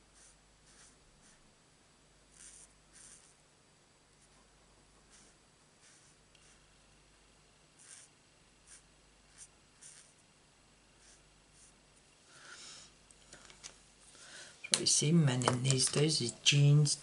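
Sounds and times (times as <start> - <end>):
marker scratching on cardstock: 0.2 - 1.4, 2.3 - 3.4, 5.1 - 6.6, 7.8 - 10.2.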